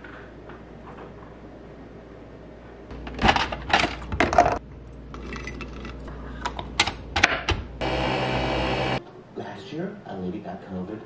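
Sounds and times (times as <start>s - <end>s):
coffee machine motor hum: 7.8s - 9.0s.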